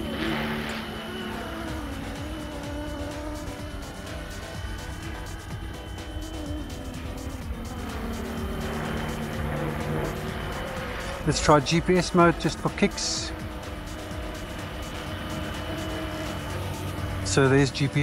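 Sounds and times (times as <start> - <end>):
rc helicopter whine: 0.0 - 18.0.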